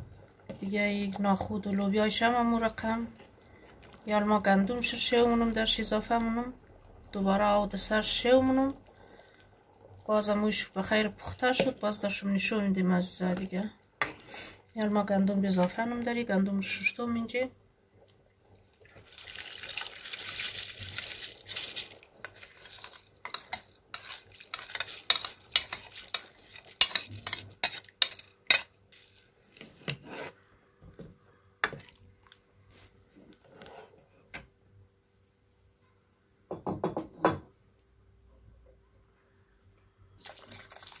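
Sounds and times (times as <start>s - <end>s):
grain pouring into pot: 18.9s - 27.2s, 40.2s - 41.0s
metal ladle clinking and scraping: 22.4s - 29.0s.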